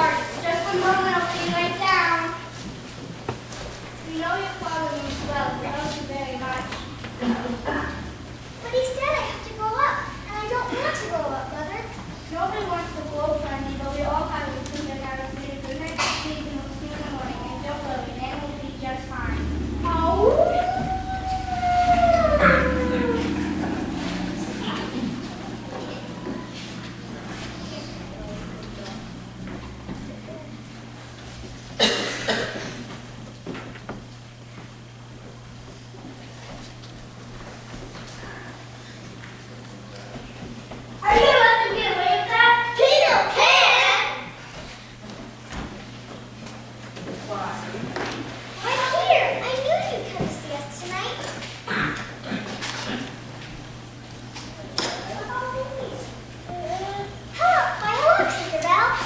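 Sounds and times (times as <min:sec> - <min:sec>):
child speaking: 0:00.0 - 0:02.5, 0:04.1 - 0:30.7, 0:41.0 - 0:44.4, 0:48.6 - 0:51.9, 0:54.6 - 0:59.0
low steady hum: 0:03.8 - 0:34.0
child howling: 0:17.0 - 0:30.6.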